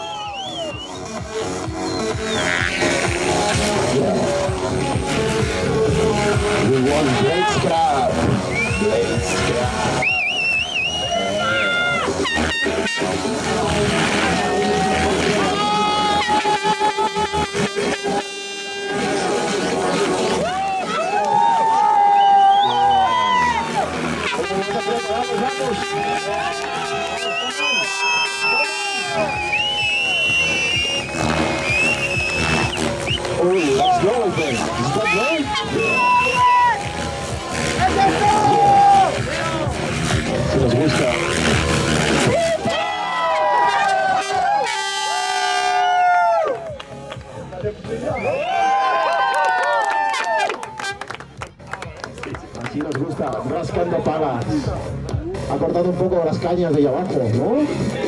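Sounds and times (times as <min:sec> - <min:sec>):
spectators shouting and cheering: 0:00.0 - 0:58.0.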